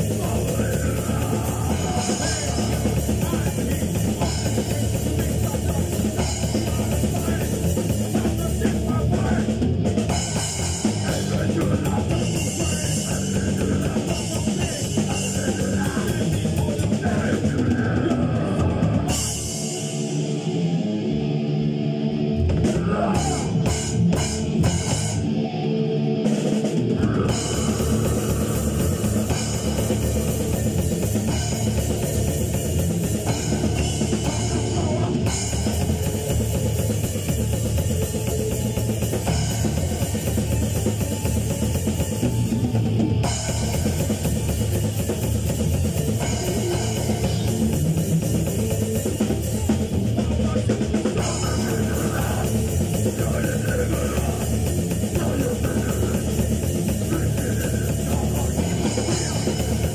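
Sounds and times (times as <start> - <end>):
rock band playing: 0.0 - 59.9.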